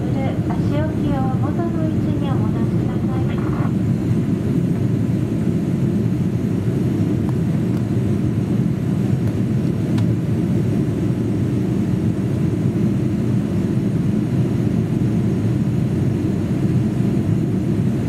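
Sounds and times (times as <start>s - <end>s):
announcement over pa: 0.0s - 3.7s
airliner cabin rumble: 0.0s - 18.0s.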